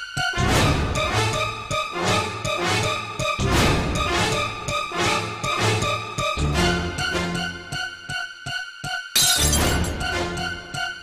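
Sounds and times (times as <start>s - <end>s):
tense music with pulsing beat: 0.0s - 11.0s
glass bottle shattering: 9.2s - 9.9s.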